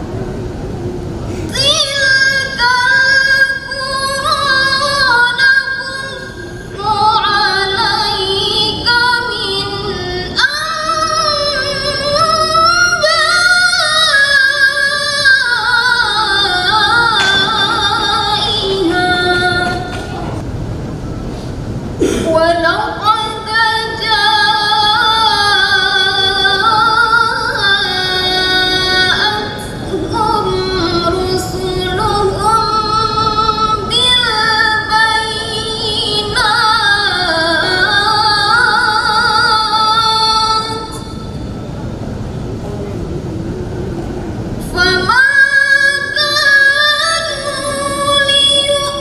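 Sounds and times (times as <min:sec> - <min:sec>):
low rumble of hall noise: 0:00.0 - 0:49.0
steady background noise: 0:00.0 - 0:49.0
woman reciting melodically: 0:01.0 - 0:20.4, 0:22.0 - 0:41.4, 0:44.6 - 0:49.0.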